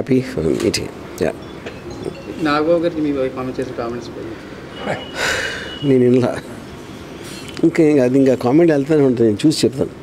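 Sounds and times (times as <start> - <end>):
brief high tone: 1.4 - 6.2
man speaking: 5.7 - 6.6.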